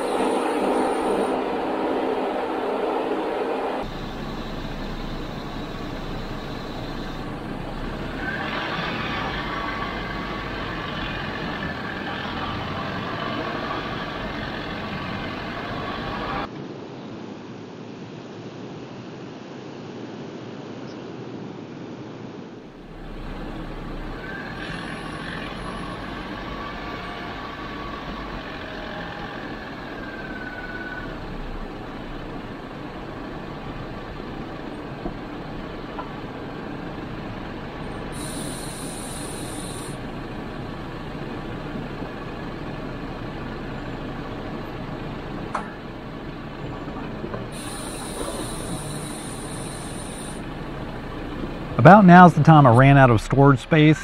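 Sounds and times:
faint wavering whistle: 0:00.0 - 0:10.2, 0:23.0 - 0:31.5, 0:38.0 - 0:40.1, 0:47.5 - 0:50.6
car driving on dirt trail: 0:00.0 - 0:16.5, 0:22.8 - 0:54.0
high hiss: 0:03.8 - 0:14.1, 0:37.9 - 0:40.6, 0:47.5 - 0:51.0.

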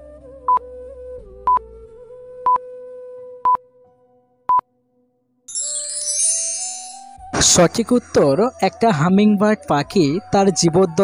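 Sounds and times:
soft background music: 0:05.5 - 0:11.0.

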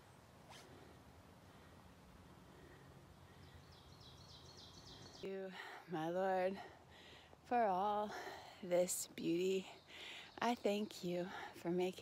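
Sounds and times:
faint forest ambience: 0:00.0 - 0:12.0.

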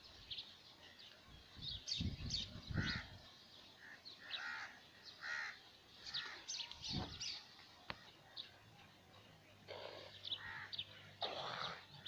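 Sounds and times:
small birds chirping: 0:00.0 - 0:12.0
crows cawing: 0:03.8 - 0:06.4, 0:10.4 - 0:11.8.

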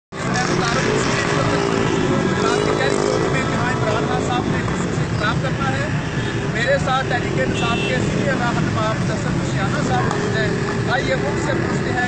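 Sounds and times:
mix of voices: 0:00.1 - 0:12.0
motorcycle engines running: 0:00.2 - 0:12.0.

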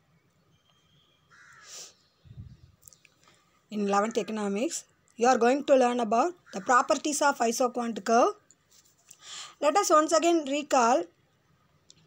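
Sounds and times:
faint bird call: 0:00.5 - 0:03.4.

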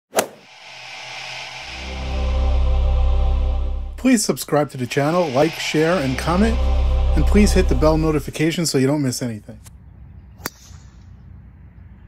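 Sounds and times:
rising swish: 0:00.1 - 0:08.7
sharp hit: 0:00.2 - 0:08.6
intro music: 0:00.4 - 0:08.9
low bass notes: 0:01.7 - 0:08.5.

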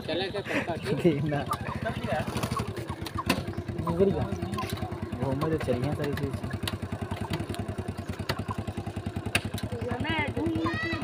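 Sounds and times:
motorcycle engine running: 0:00.0 - 0:11.0
voices talking: 0:00.0 - 0:11.0.

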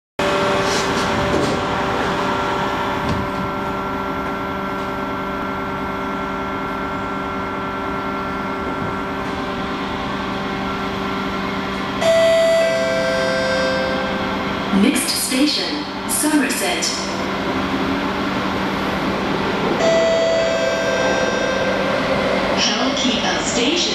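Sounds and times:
train rumbling inside carriage: 0:00.2 - 0:23.9.

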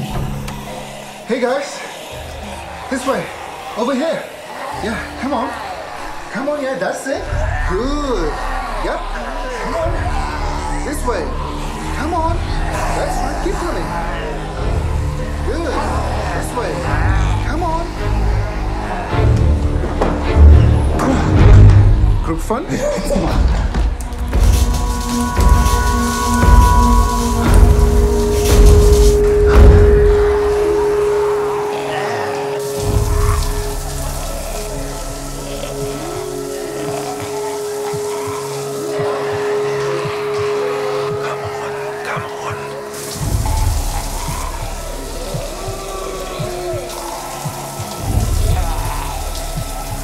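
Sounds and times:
moaning voices: 0:00.0 - 0:50.0
long held orchestral note: 0:24.1 - 0:43.5.

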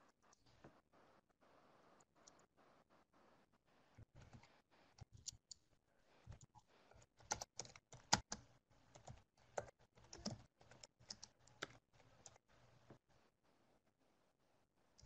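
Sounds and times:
faint keyboard typing: 0:01.8 - 0:02.6, 0:03.9 - 0:13.0.

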